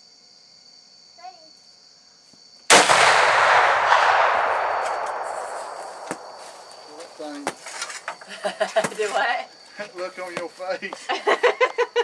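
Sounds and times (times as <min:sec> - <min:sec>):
rifle shot with rolling echo: 0:02.7 - 0:07.0.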